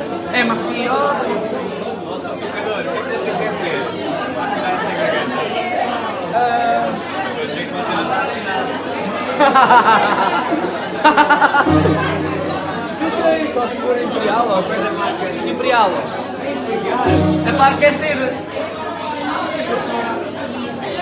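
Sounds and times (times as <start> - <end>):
people talking: 0.0 - 21.0
low held accordion chord: 11.6 - 13.7, 17.0 - 18.8.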